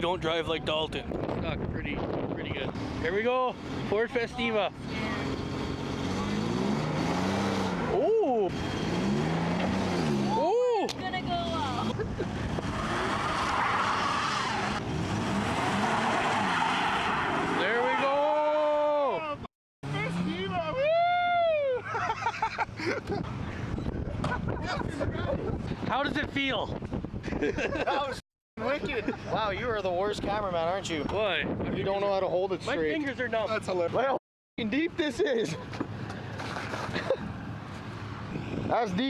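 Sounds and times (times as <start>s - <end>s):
car engines revving: 2.5s - 18.9s, 19.8s - 20.8s
tires spinning on ice and snow: 5.3s - 10.5s, 11.9s - 19.0s.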